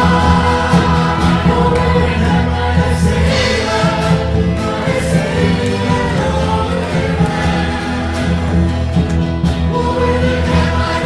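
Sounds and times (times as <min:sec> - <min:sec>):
choir singing praise song: 0:00.0 - 0:11.0
instrumental accompaniment: 0:00.0 - 0:11.0.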